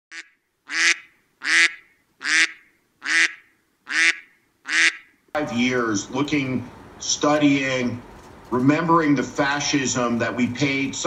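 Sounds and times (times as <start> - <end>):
nasal quack-like honks: 0.1 - 5.1.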